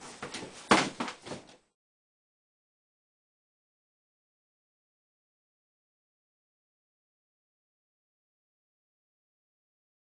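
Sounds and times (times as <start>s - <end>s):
knocks and thumps: 0.0s - 1.6s.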